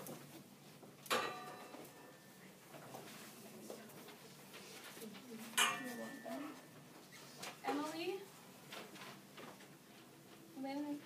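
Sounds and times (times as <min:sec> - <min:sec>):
indistinct voices in a classroom: 0:01.9 - 0:11.0.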